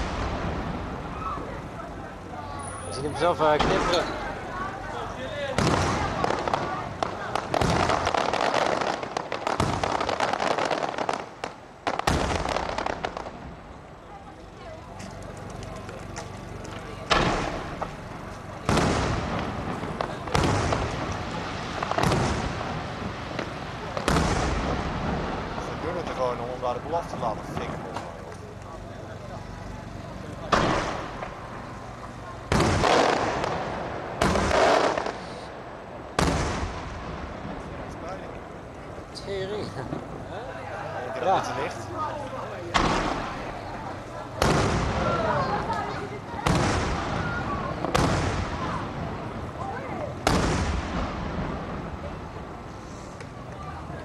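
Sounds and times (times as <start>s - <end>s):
small firework cracks: 3.4s - 40.8s, 41.4s - 54.0s
firework shells bursting: 5.5s - 13.5s, 15.0s - 25.4s, 29.9s - 38.9s, 42.7s - 49.1s, 50.2s - 51.9s.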